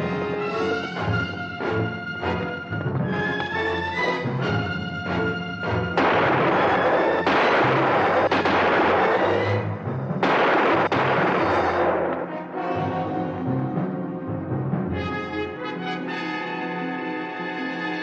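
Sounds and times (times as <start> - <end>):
orchestral music with brass: 0.0 - 18.0
gunshots with echo: 6.0 - 12.5.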